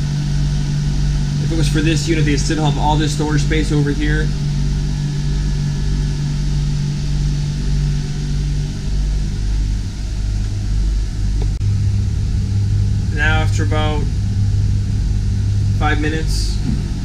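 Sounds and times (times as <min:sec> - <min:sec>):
air conditioner hum: 0:00.0 - 0:17.0.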